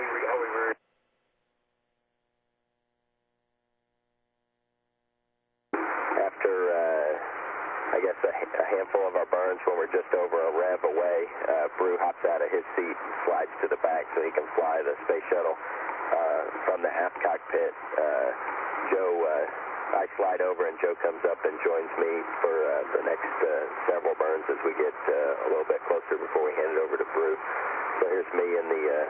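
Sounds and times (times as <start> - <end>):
speech over radio: 0.0 - 0.8, 5.8 - 29.0.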